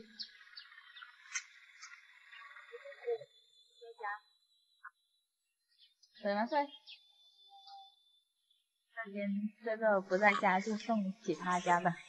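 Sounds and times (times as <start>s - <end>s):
high bird chirps: 0.0s - 12.0s.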